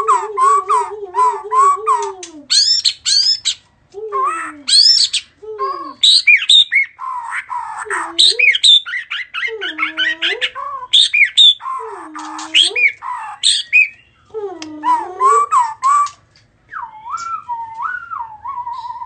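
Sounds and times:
bird singing varied phrases: 0.0s - 19.0s.

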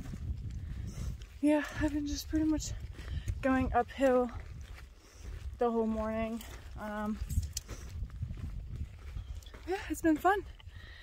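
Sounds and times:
footsteps on rocky dirt trail: 0.0s - 11.0s
wind rumbling on microphone: 0.0s - 11.0s
woman speaking: 1.4s - 2.8s, 3.4s - 4.4s, 5.6s - 7.3s, 9.6s - 10.5s.

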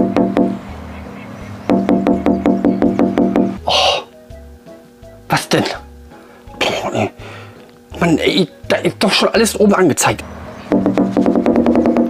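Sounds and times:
background music with low beat: 0.0s - 12.0s
man coughing: 6.6s - 7.2s.

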